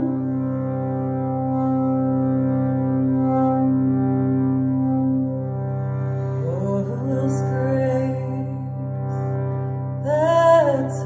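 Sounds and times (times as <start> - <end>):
harmonium drone: 0.0 - 11.0.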